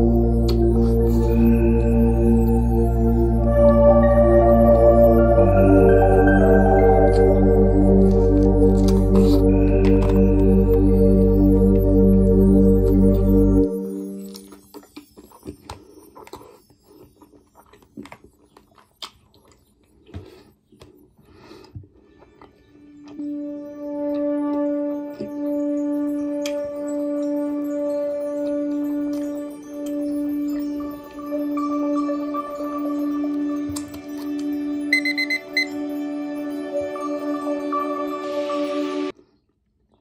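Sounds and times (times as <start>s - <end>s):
breathy noises: 0.0s - 14.9s
background music: 0.0s - 16.6s, 22.0s - 39.2s
wet chewing smacks: 14.3s - 21.8s
timer alarm short high beeps: 34.9s - 35.8s.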